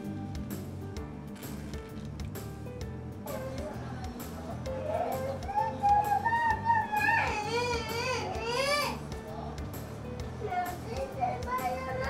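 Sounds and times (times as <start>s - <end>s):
background music: 0.0s - 12.0s
child talking: 7.3s - 9.0s, 10.4s - 12.0s.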